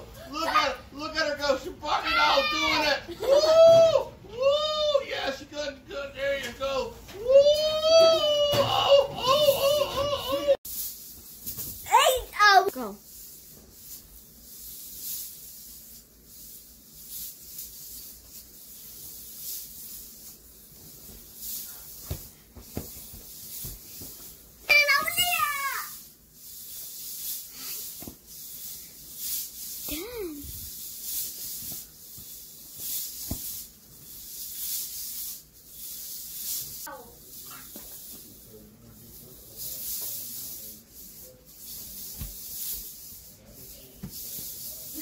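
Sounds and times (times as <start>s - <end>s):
hula hoop swishing: 7.1s - 45.0s.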